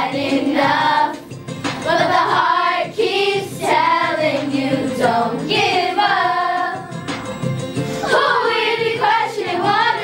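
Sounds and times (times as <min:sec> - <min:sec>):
children singing in unison: 0:00.0 - 0:07.1, 0:08.0 - 0:10.0.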